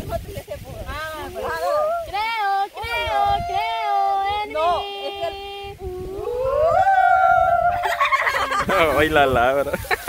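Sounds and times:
woman singing: 0:02.1 - 0:05.8.

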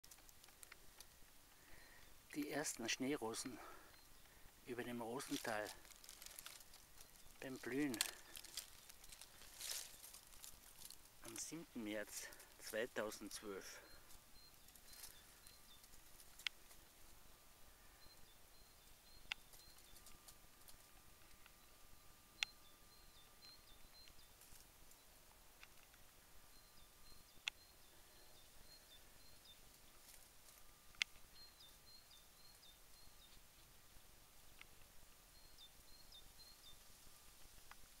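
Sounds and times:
faint bird chirping: 0:00.0 - 0:38.0.

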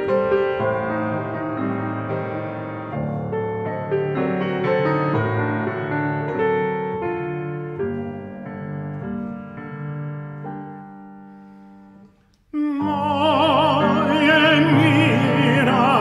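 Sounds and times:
solo piano: 0:00.0 - 0:16.0
operatic voice singing with vibrato: 0:12.5 - 0:16.0.

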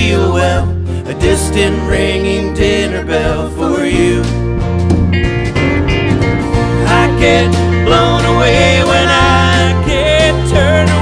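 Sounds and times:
country band playing: 0:00.0 - 0:11.0
person singing: 0:06.8 - 0:11.0.

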